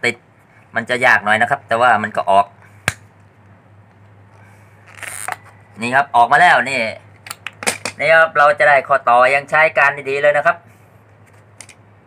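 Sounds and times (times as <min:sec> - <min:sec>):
pliers scraping pipe: 0:04.9 - 0:05.5.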